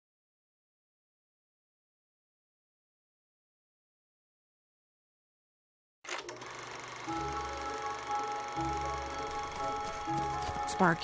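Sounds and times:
film projector clattering: 6.1s - 10.5s.

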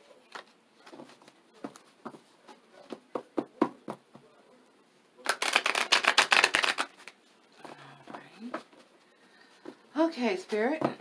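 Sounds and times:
tarot cards being shuffled: 5.2s - 7.2s
cards tapping: 5.3s - 7.1s.

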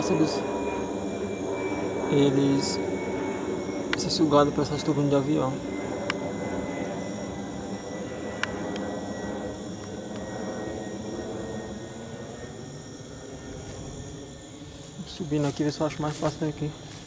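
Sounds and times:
jet engines rumbling overhead: 0.0s - 17.0s.

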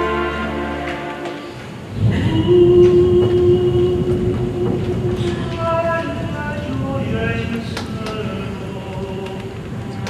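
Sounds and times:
long held orchestral note: 0.0s - 5.3s
low orchestral rumble: 0.0s - 10.0s.

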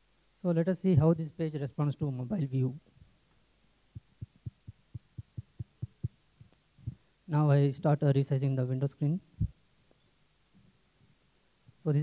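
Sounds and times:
muffled low thumps: 4.0s - 7.0s.

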